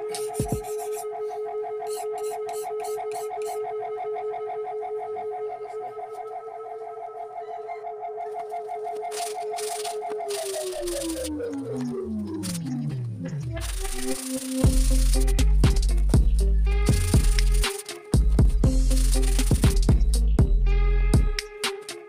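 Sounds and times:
held electronic tone: 0.0 - 15.4.

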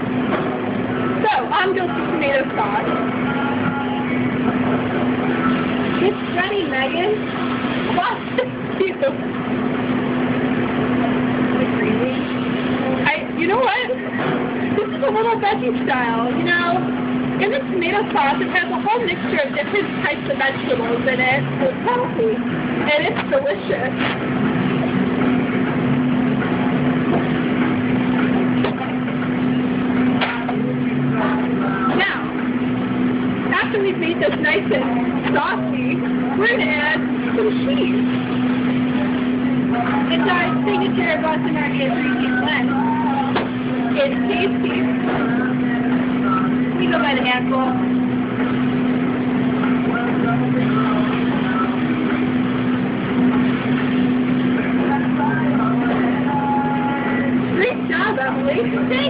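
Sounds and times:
machine hum: 0.0 - 59.0
indistinct voices: 0.9 - 59.0.

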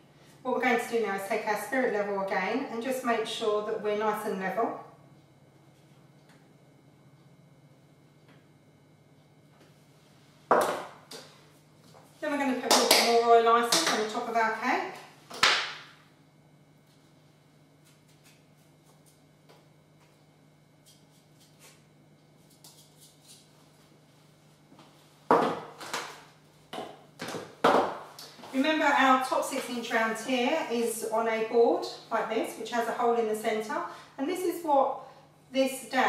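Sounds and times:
faint hum: 0.0 - 36.0.

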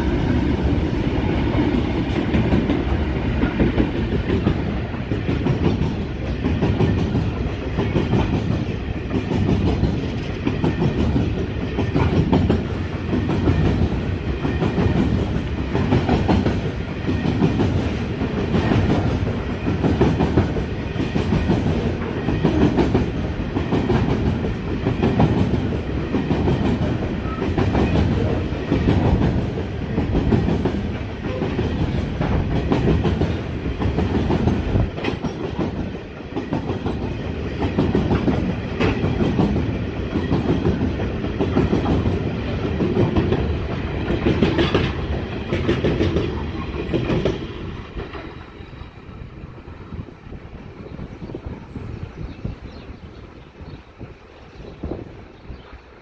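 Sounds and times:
freight train wheels rumbling: 0.0 - 56.0
train clickety-clack: 0.0 - 56.0.

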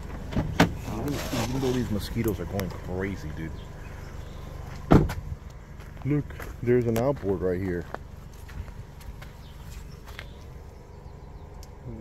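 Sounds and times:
faint bird chirps: 3.5 - 4.6
footsteps on rocky ground: 3.9 - 10.6.

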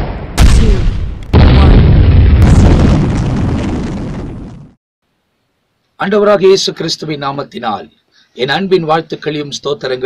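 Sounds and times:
boom sound effect: 0.0 - 4.8.

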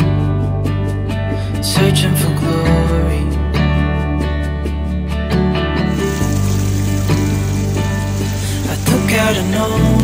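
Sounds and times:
background music: 0.0 - 10.0
stream running over rocks: 5.9 - 10.0.

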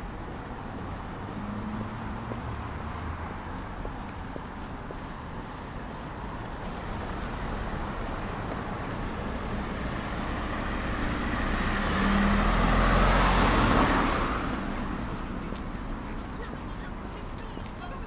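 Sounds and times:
street traffic: 0.0 - 18.0
car passing close by: 6.5 - 15.7.

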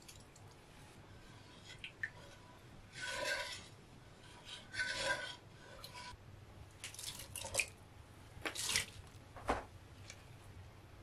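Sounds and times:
wooden spoon scraping a pot: 0.7 - 6.2.

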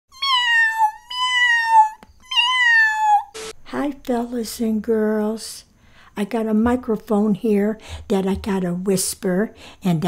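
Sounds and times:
cat meowing: 0.1 - 3.4.

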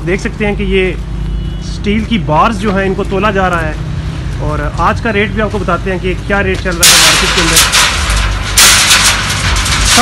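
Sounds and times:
steel bars clattering: 6.3 - 10.0.

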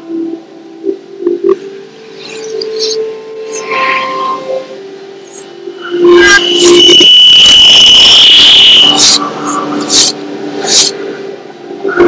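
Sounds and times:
harsh noise: 5.4 - 11.0
shrill held tone: 5.9 - 9.0.

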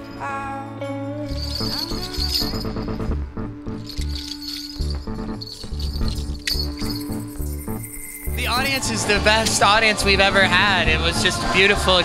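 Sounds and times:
electric bass line: 0.0 - 12.0
percussion: 1.3 - 12.0.

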